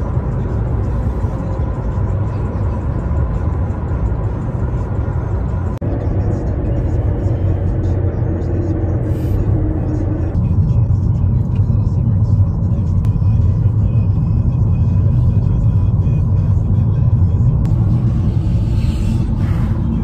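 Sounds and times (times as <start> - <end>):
car interior rumble: 0.0 - 20.0.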